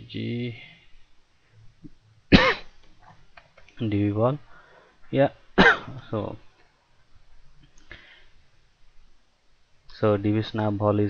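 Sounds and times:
man coughing: 0:02.3 - 0:02.7, 0:05.6 - 0:06.0.

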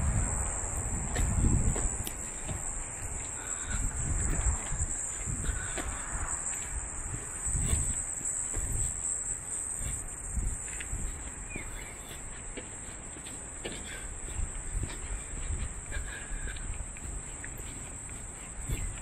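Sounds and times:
insects droning: 0:00.0 - 0:19.0
footsteps on concrete: 0:00.5 - 0:19.0.

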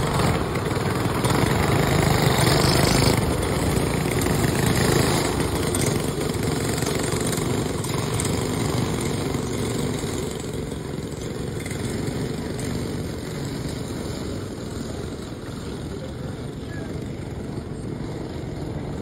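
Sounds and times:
go-kart engines racing: 0:00.0 - 0:19.0.

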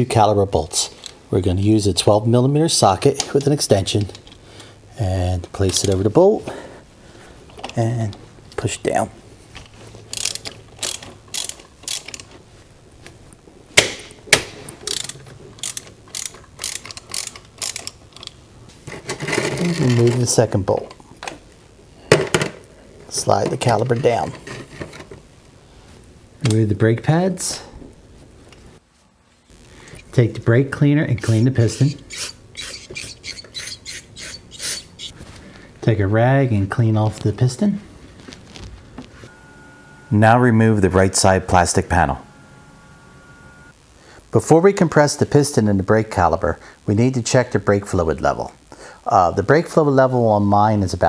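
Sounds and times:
hand ratchet clicking: 0:10.1 - 0:12.3, 0:14.9 - 0:18.4, 0:31.8 - 0:35.1.

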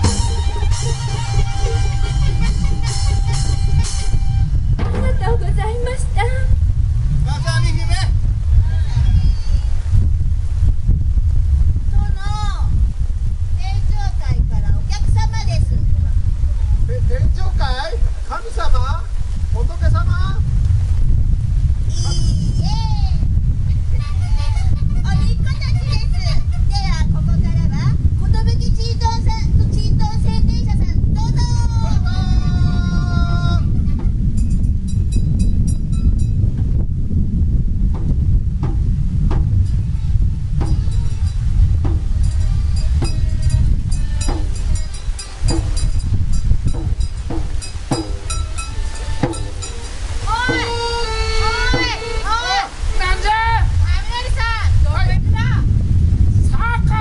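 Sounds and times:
heavy rain: 0:00.0 - 0:35.7, 0:36.4 - 0:57.0
wind buffeting microphone: 0:00.0 - 0:57.0
held vocal note: 0:48.0 - 0:53.2.

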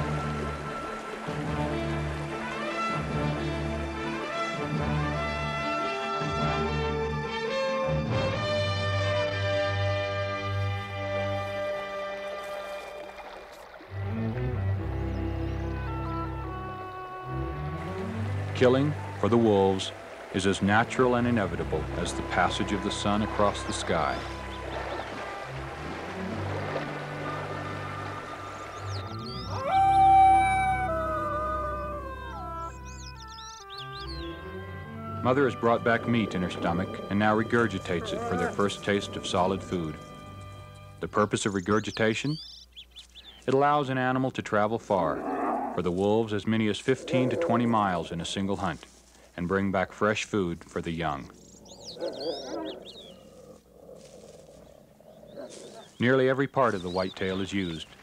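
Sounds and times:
background music with low tones: 0:00.0 - 0:13.2, 0:13.9 - 0:42.5
wolf pup howling: 0:29.4 - 0:32.8, 0:37.8 - 0:38.7, 0:47.0 - 0:47.7, 0:51.7 - 0:56.0.

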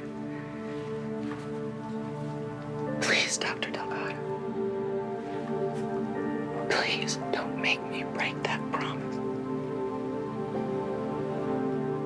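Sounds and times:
soft music of sustained chords: 0:00.0 - 0:12.0.

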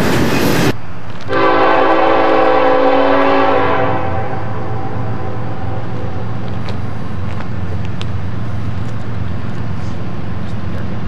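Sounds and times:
train rumbling past: 0:00.0 - 0:11.0.

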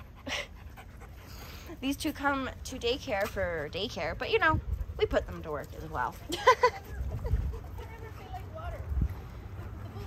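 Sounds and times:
dog panting: 0:00.0 - 0:02.4, 0:06.1 - 0:08.7.

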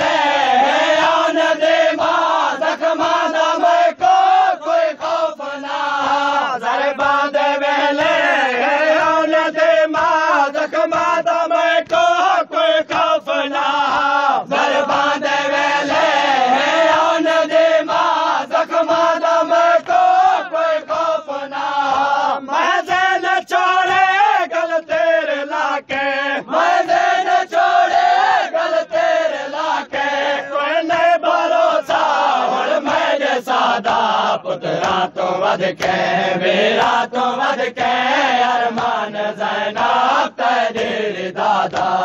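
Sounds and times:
men chanting a lament: 0:00.0 - 0:42.0.

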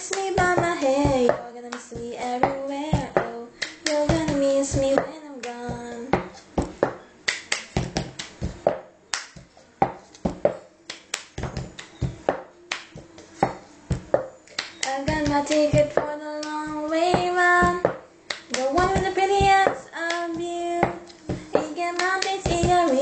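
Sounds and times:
person singing: 0:00.0 - 0:06.3, 0:14.7 - 0:23.0
hand claps: 0:00.0 - 0:23.0.

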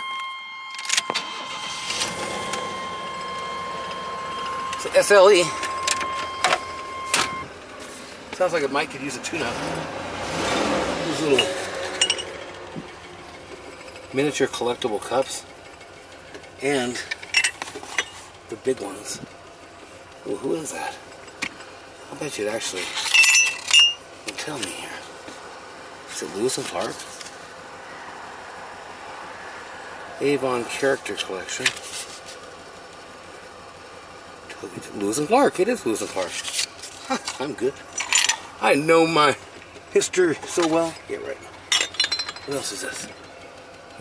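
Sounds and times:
high electronic whine: 0:00.0 - 0:07.6.

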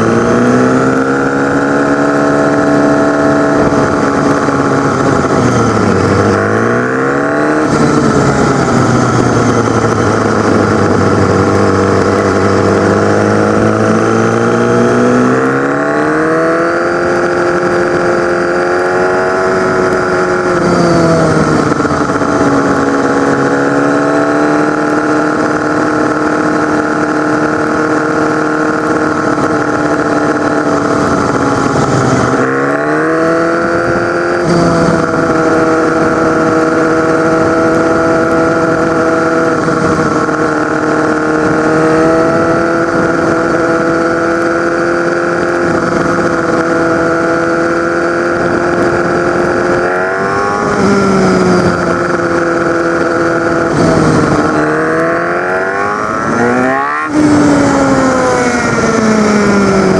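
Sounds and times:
motorcycle engine revving: 0:00.0 - 0:59.9
wind noise: 0:00.0 - 0:59.9.

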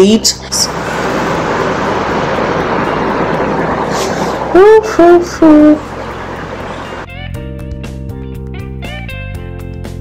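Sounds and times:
loud rushing noise: 0:00.7 - 0:07.1.

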